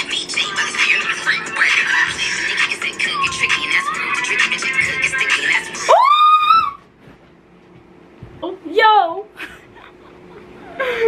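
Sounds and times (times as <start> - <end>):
woman screaming excitedly: 5.9 - 6.8.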